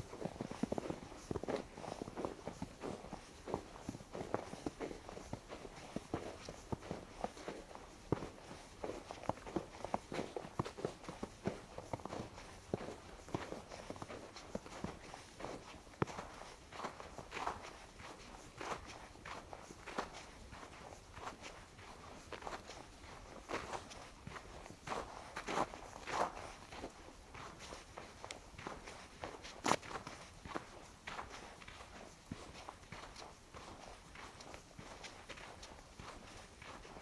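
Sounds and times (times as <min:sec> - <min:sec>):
footsteps crunching in snow: 0:00.0 - 0:37.0.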